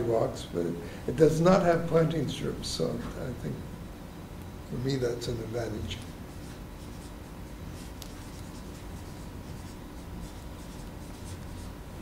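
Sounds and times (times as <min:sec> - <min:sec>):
electrical hum: 0:00.0 - 0:12.0
pen scratching on paper: 0:06.3 - 0:11.8.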